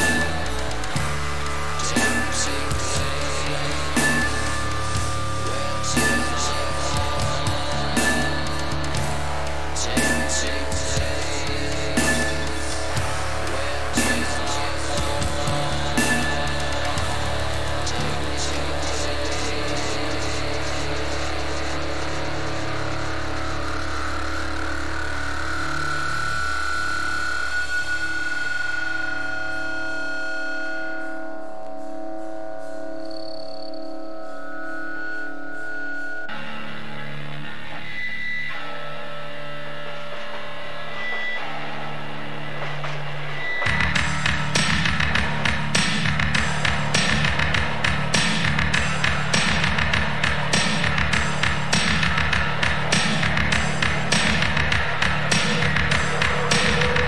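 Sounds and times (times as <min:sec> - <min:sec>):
steady drum beat: 0:00.0 - 0:23.1, 0:41.9 - 0:57.0
droning guitar tones: 0:00.0 - 0:57.0.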